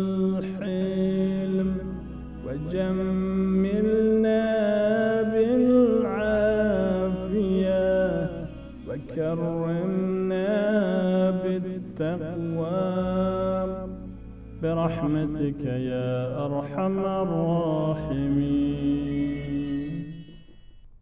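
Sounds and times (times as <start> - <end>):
chanted vocal melody: 0.0 - 20.7
bright ringing chime: 19.1 - 21.0.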